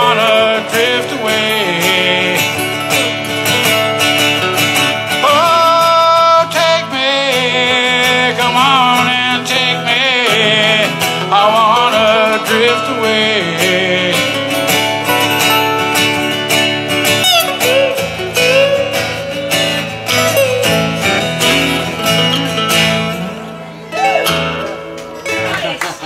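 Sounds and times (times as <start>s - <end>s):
acoustic guitars strumming and picking: 0.0s - 26.0s.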